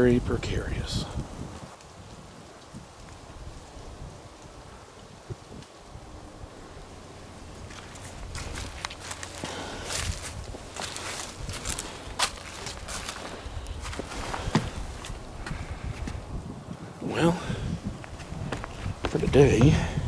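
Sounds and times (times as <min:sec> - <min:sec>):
faint outdoor background: 0:00.0 - 0:20.0
footsteps crunching through dry leaves: 0:07.3 - 0:16.2, 0:17.9 - 0:20.0.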